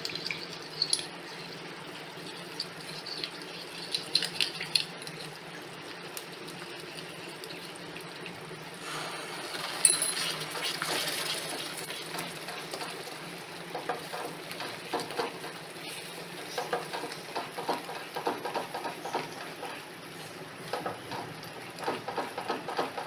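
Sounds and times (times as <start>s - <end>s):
mixture sizzling and bubbling: 0.0s - 23.0s
spatula scraping a pan: 8.8s - 13.0s.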